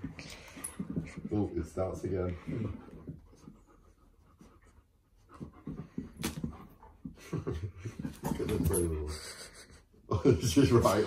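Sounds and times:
dog panting: 0:00.0 - 0:09.9
dogs play noises: 0:00.0 - 0:11.0.

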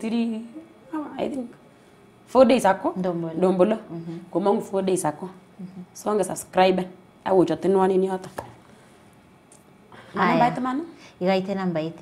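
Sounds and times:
woman speaking: 0:02.3 - 0:08.4, 0:10.1 - 0:12.0.

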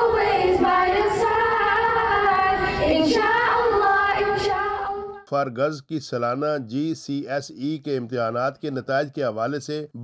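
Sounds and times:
girls singing together: 0:00.0 - 0:05.2.

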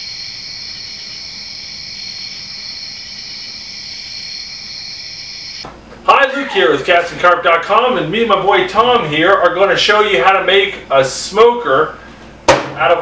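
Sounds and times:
crickets chirping: 0:00.0 - 0:05.7.

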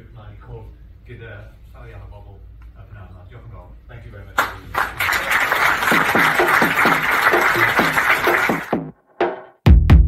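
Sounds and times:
crowd applauding: 0:04.4 - 0:08.8.

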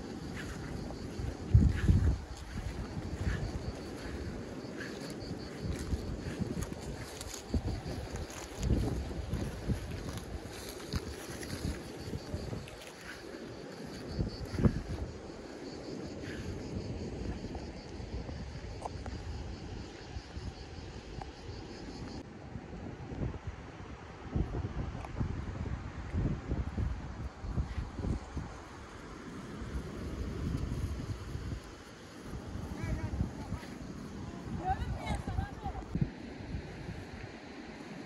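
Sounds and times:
wind buffeting microphone: 0:00.0 - 0:21.8, 0:22.6 - 0:37.4.

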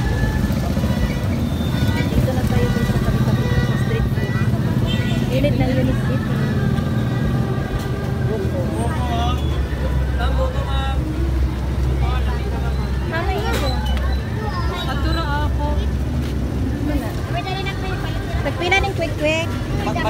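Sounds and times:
low engine rumble: 0:00.0 - 0:20.0
voices of passers-by: 0:00.0 - 0:20.0.

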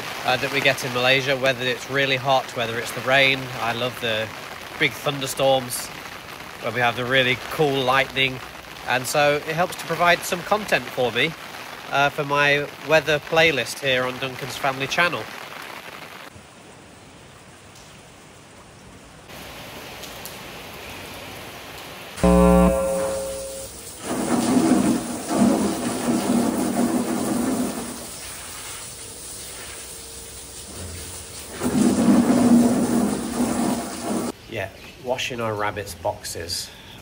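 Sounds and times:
steady rain: 0:00.0 - 0:34.4
short loud hum: 0:22.2 - 0:25.1
garden hose spraying: 0:23.2 - 0:34.4.

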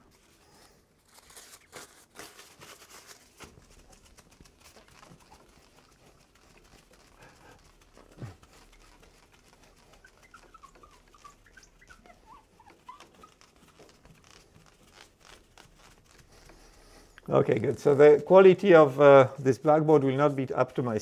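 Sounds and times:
cloth wiping glass: 0:03.2 - 0:21.0
cloth squeaking on glass: 0:07.2 - 0:16.7.

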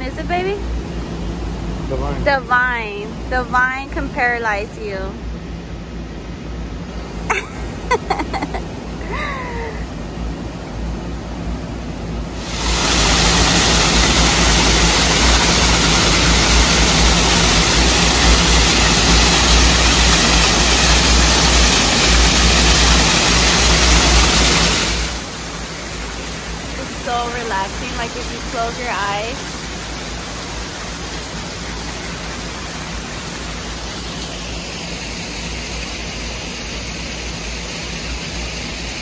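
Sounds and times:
waterfall rushing: 0:12.4 - 0:39.0.

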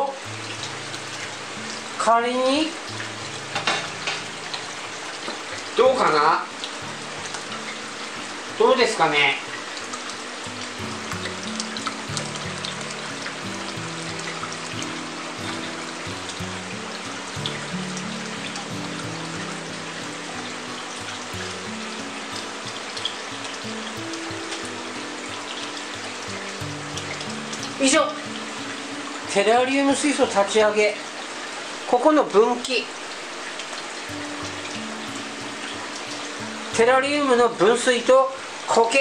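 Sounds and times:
slow background music: 0:00.0 - 0:38.9
water trickling over rocks: 0:00.0 - 0:39.0.

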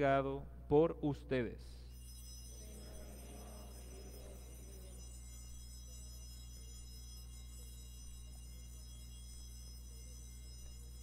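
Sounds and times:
low electrical hum: 0:00.0 - 0:11.0
high-pitched sound system whine: 0:01.9 - 0:11.0.

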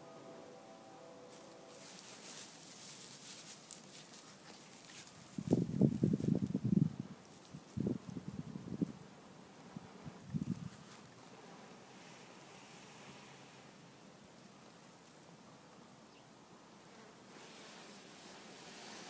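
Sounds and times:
dry grass rustling: 0:01.3 - 0:09.0, 0:10.0 - 0:15.5.

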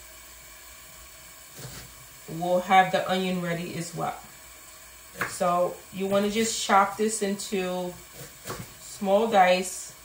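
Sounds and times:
sausage sizzling in a pan: 0:00.0 - 0:10.0.

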